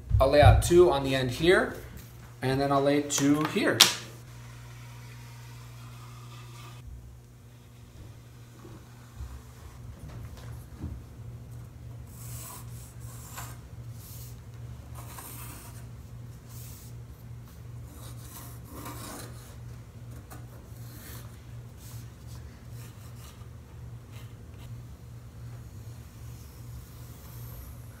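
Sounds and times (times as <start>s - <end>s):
steady low hum: 0.0s - 28.0s
pencil scratching on wood: 12.1s - 14.3s, 14.9s - 15.9s, 17.8s - 19.6s.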